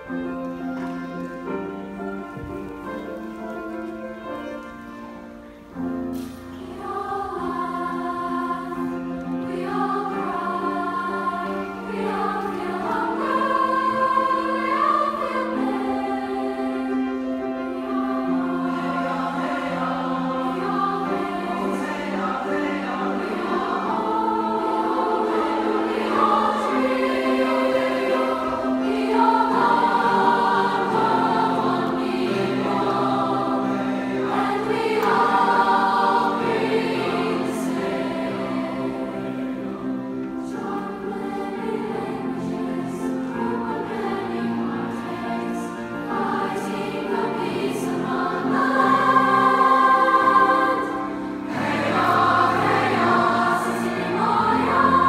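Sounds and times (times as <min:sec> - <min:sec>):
choir singing: 0:00.0 - 0:55.0
piano accompaniment: 0:00.0 - 0:55.0.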